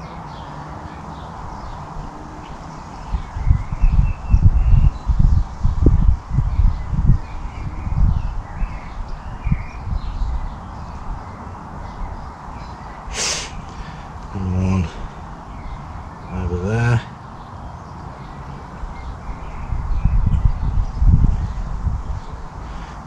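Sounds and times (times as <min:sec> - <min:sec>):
birds calling faintly: 0:00.0 - 0:23.0
steady outdoor hiss: 0:00.0 - 0:23.0.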